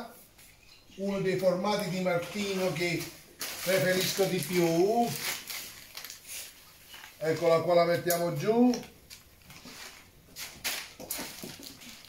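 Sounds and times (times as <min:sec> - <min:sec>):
plastic bag crinkling: 0:01.5 - 0:12.0.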